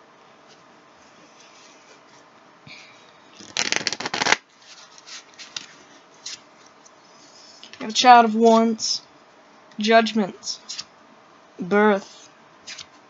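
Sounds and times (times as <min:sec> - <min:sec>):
cards being shuffled: 0:03.4 - 0:06.4, 0:12.0 - 0:13.0.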